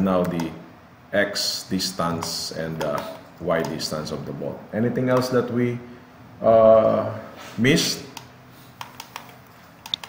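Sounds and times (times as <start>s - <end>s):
mouse and keyboard clicks: 8.2s - 10.0s.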